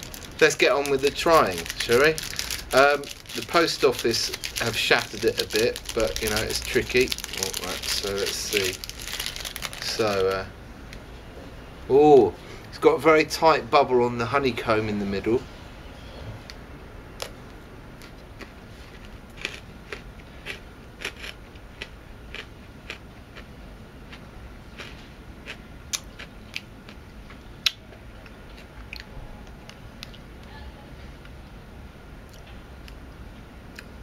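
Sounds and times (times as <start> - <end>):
crunchy chewing: 0.0 - 10.3, 18.0 - 30.5.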